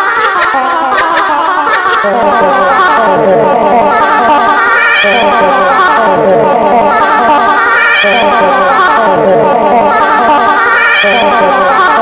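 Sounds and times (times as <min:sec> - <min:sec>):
looped cartoon voice music: 0:00.0 - 0:12.0.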